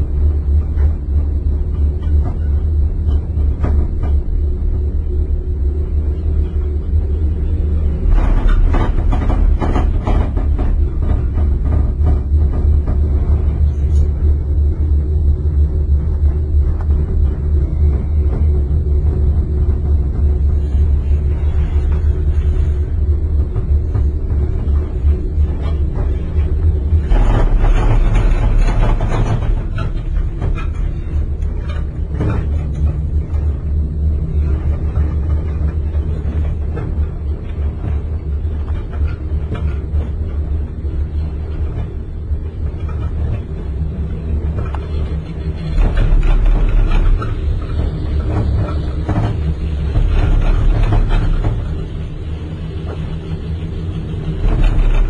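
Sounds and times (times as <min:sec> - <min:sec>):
gondola cabin rumble and hum: 0:00.0 - 0:55.0.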